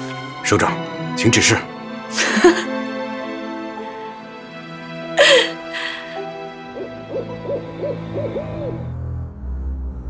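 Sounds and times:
low steady drone: 6.6 - 10.0
owl hooting: 6.7 - 8.9.

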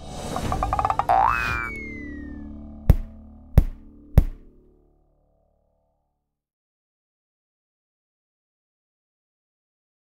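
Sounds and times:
sharp percussive hits: 0.4 - 1.6, 2.9 - 4.5
springy boing: 0.4 - 2.1
falling whistle: 0.7 - 2.4.

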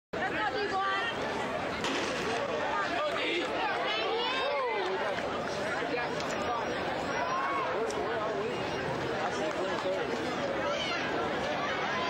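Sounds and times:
crowd chatter: 0.2 - 12.0.

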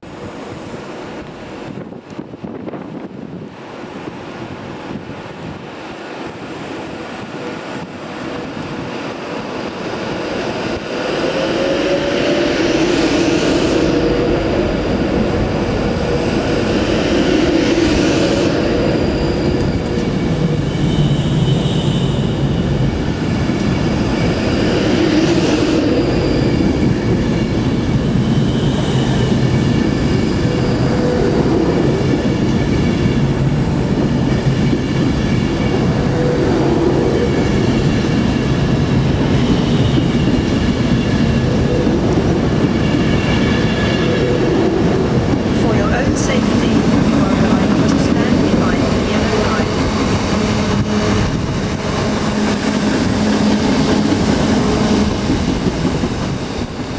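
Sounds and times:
train humming tones: 0.0 - 56.9
train wheels rumbling on rails: 0.0 - 56.9.

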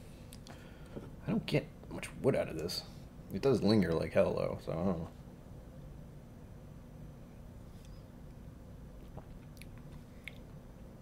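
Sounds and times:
steady low hum: 0.0 - 11.0
person sipping and swallowing: 9.0 - 10.5
small mouth clicks: 9.0 - 10.6.

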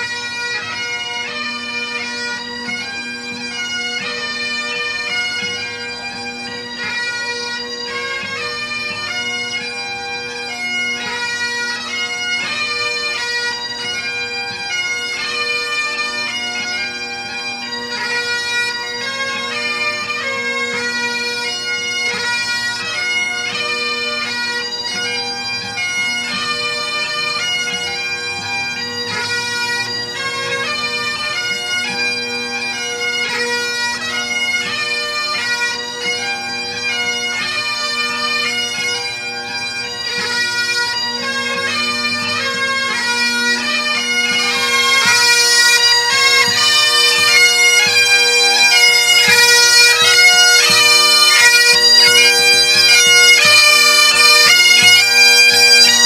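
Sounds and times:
bagpipes playing marching tune: 0.0 - 56.0.

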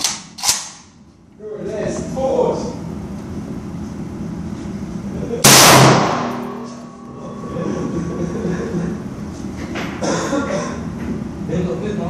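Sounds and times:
rifle shot with ringing tail: 5.4 - 6.9.

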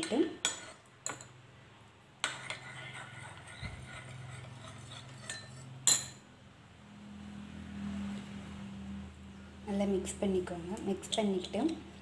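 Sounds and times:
spoon clinking glass bowl: 5.2 - 6.2.

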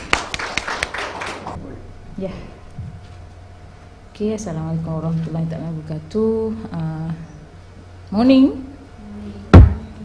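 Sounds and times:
small audience applauding: 0.0 - 1.6.

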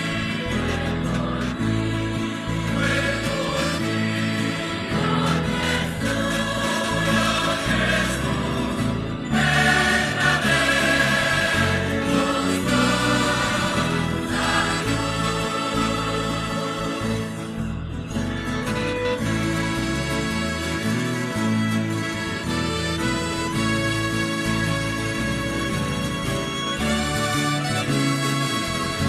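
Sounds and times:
choir singing a hymn: 0.0 - 17.7.

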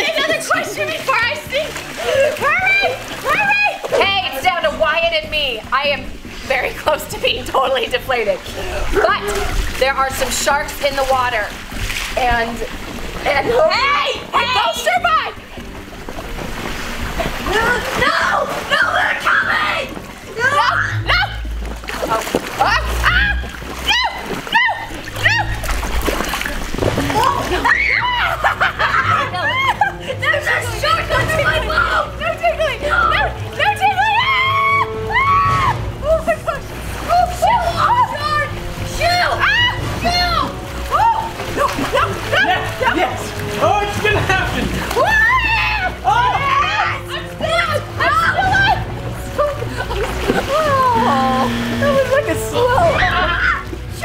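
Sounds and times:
water splashing against float: 0.0 - 28.8, 30.8 - 46.2, 47.4 - 54.0
woman shouting: 17.5 - 21.5, 22.6 - 25.6, 32.4 - 43.2, 45.0 - 49.6
people shrieking and squealing: 22.6 - 25.8, 27.0 - 32.0, 32.8 - 43.0, 44.8 - 53.8.

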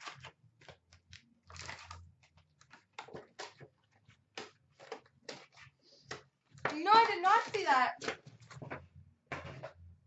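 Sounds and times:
foil wrappers crinkling: 0.0 - 3.9.

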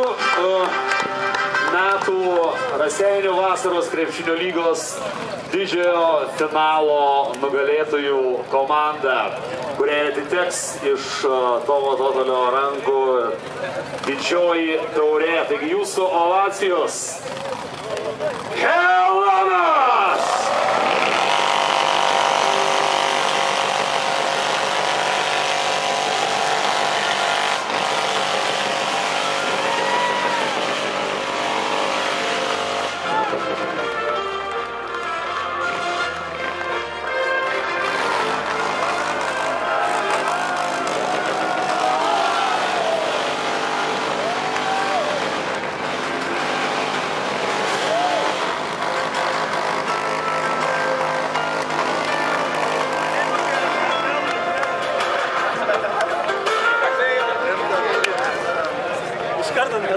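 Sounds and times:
music over loudspeakers: 0.0 - 3.1, 48.8 - 58.6
crowd clapping: 0.0 - 3.6, 20.2 - 57.0, 57.7 - 59.8
crowd cheering: 0.0 - 5.4, 17.3 - 59.9.

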